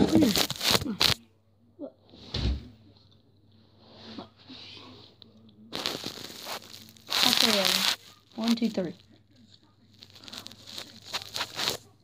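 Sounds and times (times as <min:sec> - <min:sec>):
handling rustling: 0:10.1 - 0:11.9.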